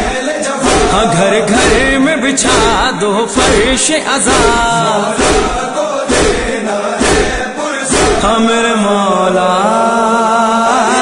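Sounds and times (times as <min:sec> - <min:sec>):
male voices chanting in unison: 0:00.0 - 0:11.0
low beat: 0:00.6 - 0:08.4.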